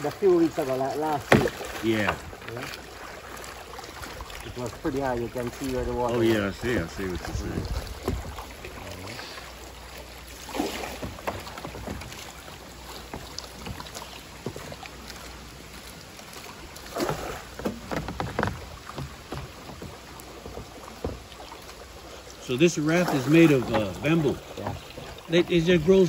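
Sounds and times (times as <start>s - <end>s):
pole splashing and knocking: 0.0s - 22.0s, 22.7s - 26.0s
river water rushing and lapping: 0.0s - 26.0s.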